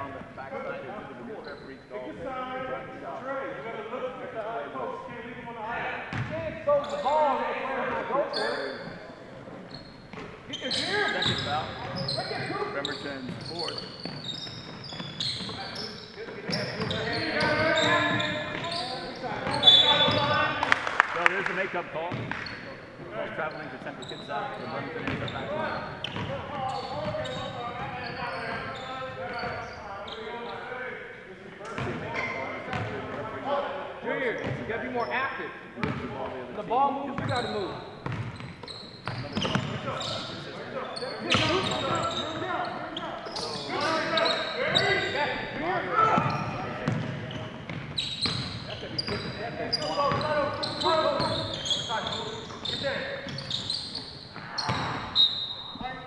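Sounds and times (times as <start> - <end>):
echoing voices: 0.0 - 38.0, 39.0 - 56.0.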